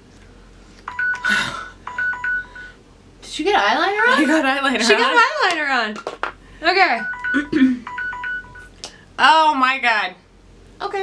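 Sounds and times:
timer alarm two-tone beeps: 0.9 - 1.3, 1.9 - 2.7, 7.0 - 8.7.

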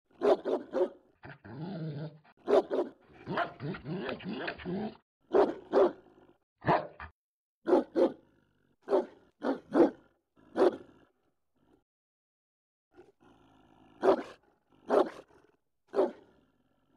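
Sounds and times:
dog barking: 0.2 - 1.0, 2.4 - 4.6, 5.3 - 11.0, 14.0 - 15.3, 15.9 - 16.4.

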